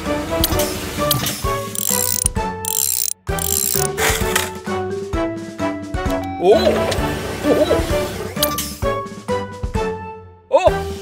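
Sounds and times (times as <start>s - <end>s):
light background music: 0.0s - 11.0s
spanner ratcheting clicks: 0.4s - 4.5s.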